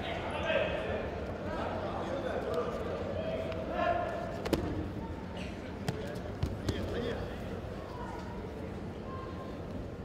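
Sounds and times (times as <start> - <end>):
sports hall hum: 0.0 - 10.0.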